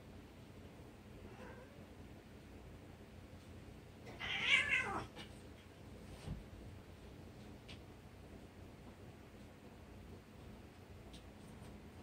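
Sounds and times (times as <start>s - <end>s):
cat meowing: 4.1s - 5.2s.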